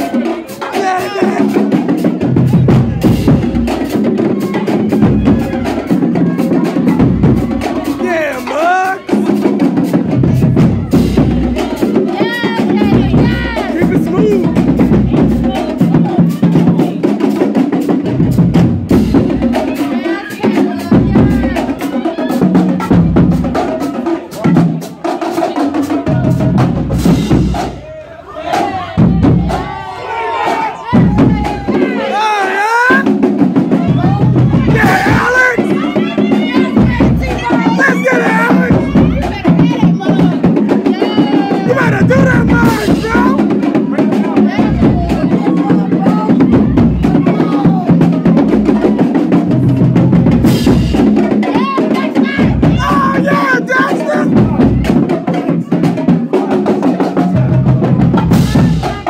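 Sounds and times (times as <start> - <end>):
marching drumline cadence: 0.0 - 59.0
people shouting and cheering: 0.0 - 59.0.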